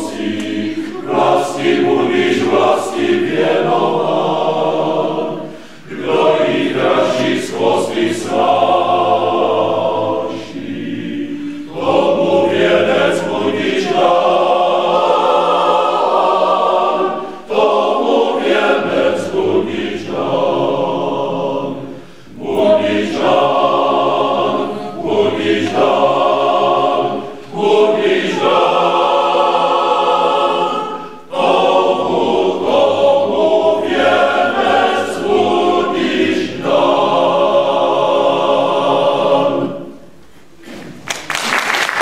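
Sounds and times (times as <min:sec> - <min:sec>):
male choir singing a cappella: 0:00.0 - 0:40.1.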